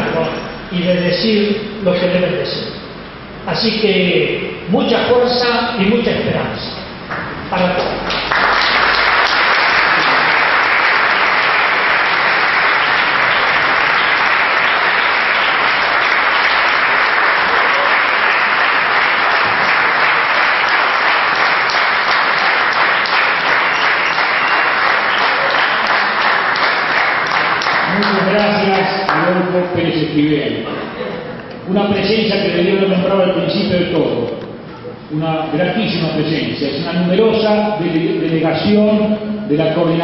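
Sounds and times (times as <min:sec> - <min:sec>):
audience applauding: 0:07.1 - 0:29.3.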